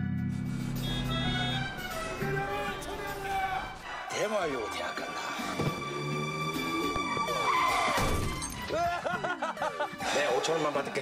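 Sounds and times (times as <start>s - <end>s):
film music: 0.0s - 11.0s.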